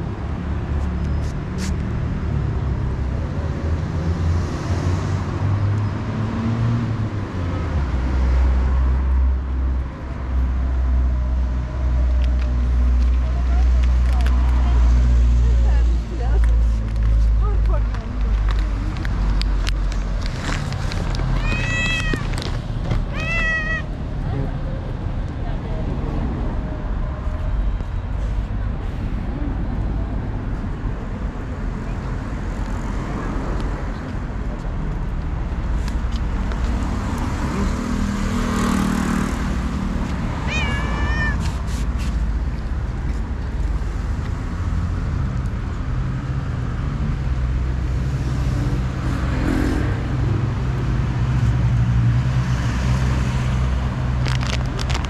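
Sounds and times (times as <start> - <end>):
street traffic rumble: 0.0 - 55.0
cats meowing: 21.2 - 24.0, 40.4 - 41.6.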